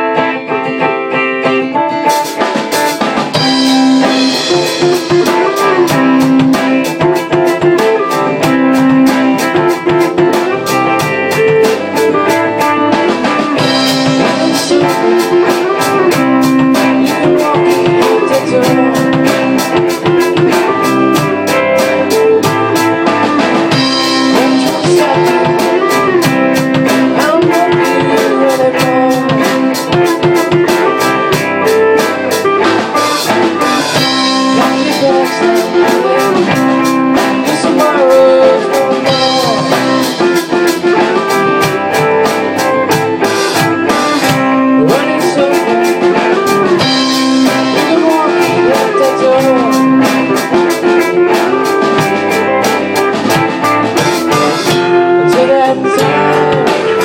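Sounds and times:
acoustic guitar strummed: 0.0s - 57.0s
steady drum beat: 0.0s - 57.0s
man singing: 4.1s - 8.5s, 11.6s - 31.0s, 33.6s - 41.6s, 44.2s - 52.0s, 54.0s - 57.0s.

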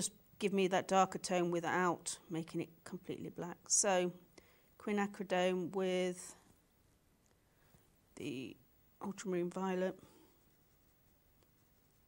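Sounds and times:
paintbrush stroking wet paper: 10.0s - 12.0s.

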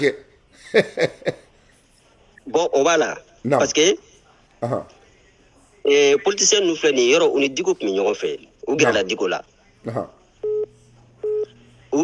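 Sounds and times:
faint steady hum: 0.0s - 12.0s
electronic telephone beeps: 10.4s - 11.5s.

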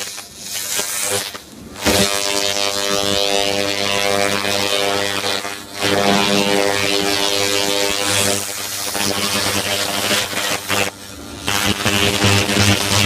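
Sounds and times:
laser rust remover buzzing: 0.0s - 13.0s.

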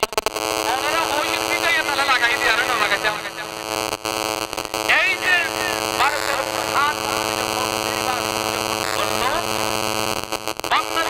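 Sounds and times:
man preaching over loudspeakers: 0.7s - 3.8s, 4.8s - 9.8s, 10.7s - 11.0s.

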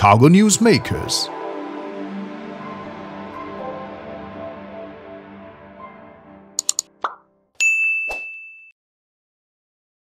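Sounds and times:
outro music: 0.0s - 7.5s
interface clicks: 6.6s - 7.2s
loud ringing ding: 7.6s - 8.7s.

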